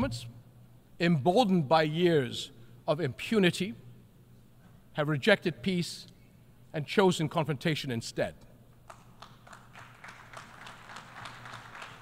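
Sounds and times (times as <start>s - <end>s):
audience clapping: 8.8s - 12.0s.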